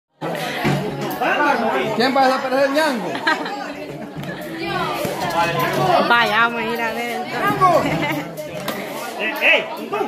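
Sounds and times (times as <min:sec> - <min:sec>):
people talking and calling out: 0:00.1 - 0:10.0.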